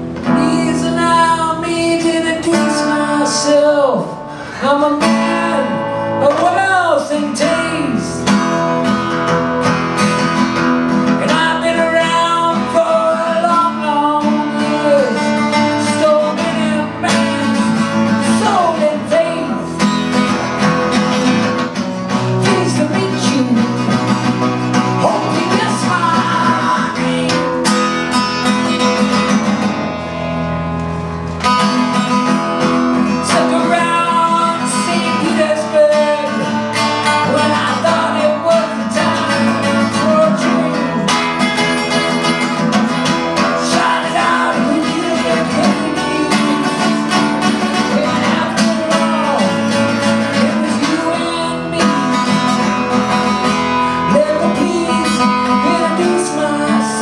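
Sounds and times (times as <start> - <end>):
strummed acoustic guitar: 0.0 - 57.0
man singing: 0.2 - 8.3, 11.1 - 20.4, 22.1 - 29.1, 33.0 - 57.0.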